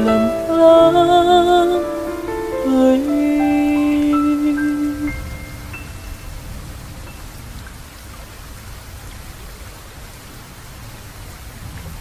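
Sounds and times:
held song notes: 0.0s - 7.8s
steady rain: 0.0s - 12.0s.

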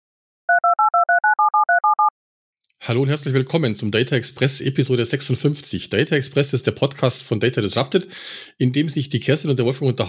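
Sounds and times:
telephone keypad beeps: 0.5s - 2.1s.

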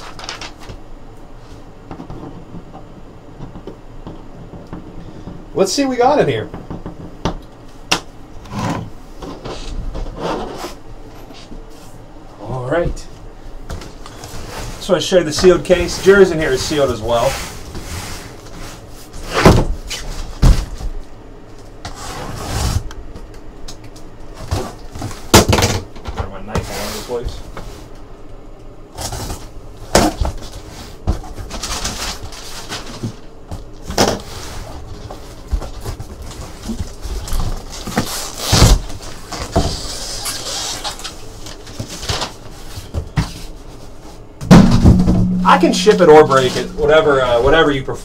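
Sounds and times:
cardboard and plastic rustling: 0.0s - 0.8s, 13.7s - 21.1s, 28.9s - 44.2s
boxes knocking when set down: 44.4s - 46.7s.

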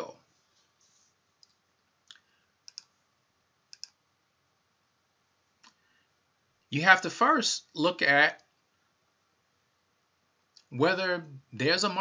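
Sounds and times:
faint computer mouse clicks: 1.4s - 3.0s, 3.7s - 4.0s.

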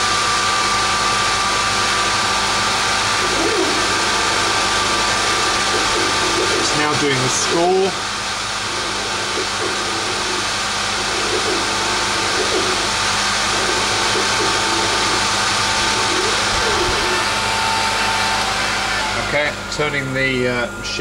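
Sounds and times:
faint wavering whine: 0.0s - 21.0s
laser cutter air rushing: 0.0s - 21.0s.

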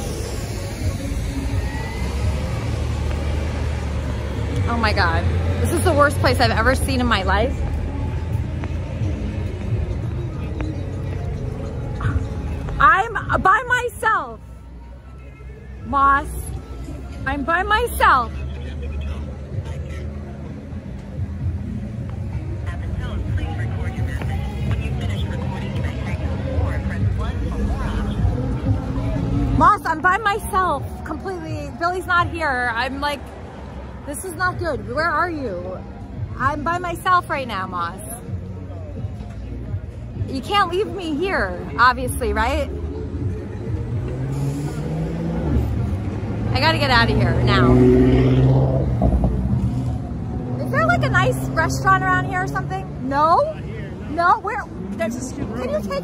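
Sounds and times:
low rumble of street traffic: 0.0s - 56.0s
vehicle engine humming: 0.0s - 56.0s.

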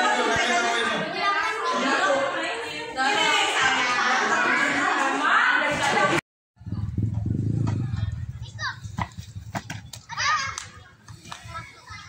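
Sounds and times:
low rumble: 6.6s - 8.6s.

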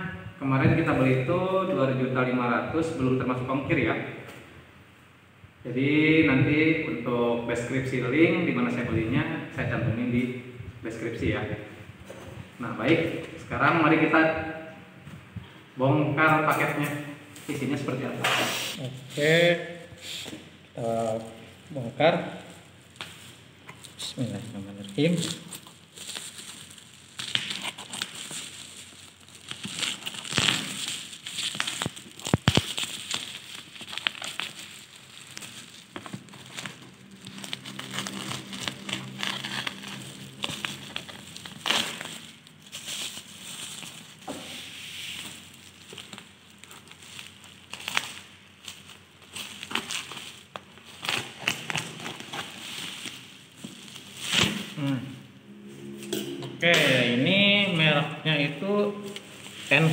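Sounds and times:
plastic mailer crinkling and tearing: 20.8s - 54.9s.

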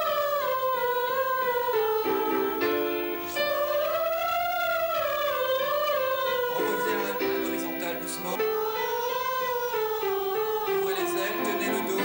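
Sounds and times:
voices humming a high note: 0.0s - 12.0s.

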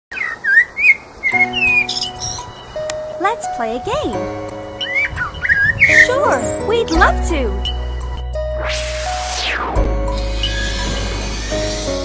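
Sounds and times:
bird chirps: 0.1s - 2.9s, 4.8s - 7.0s
held music chord: 1.4s - 11.2s.

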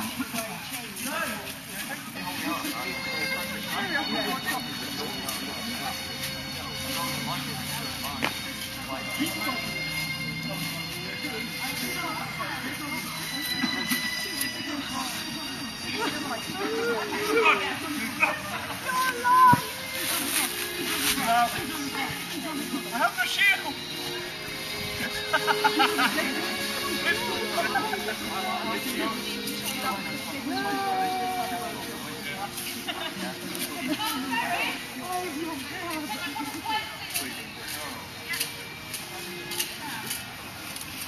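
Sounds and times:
people talking and calling out: 0.0s - 41.0s
people shouting: 16.6s - 19.7s, 30.5s - 32.1s.

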